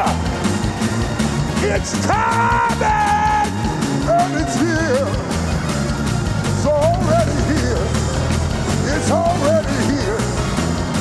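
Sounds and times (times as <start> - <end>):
gospel band music: 0.0 - 11.0.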